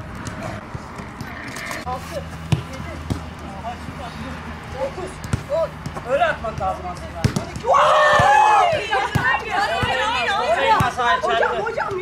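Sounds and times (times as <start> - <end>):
football being kicked: 2.5 - 3.3, 5.2 - 11.0
women calling and chattering: 7.7 - 12.0.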